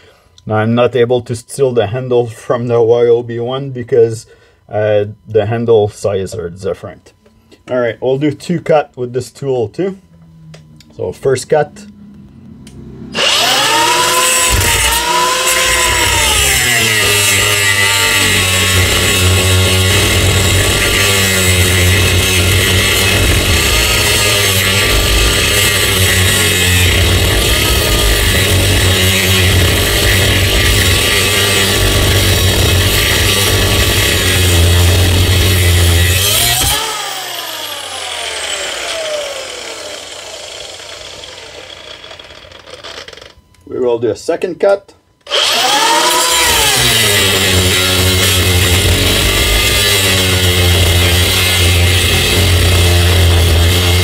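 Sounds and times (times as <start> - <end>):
angle grinder cutting steel: 12.6 - 43.4, 45.2 - 54.0.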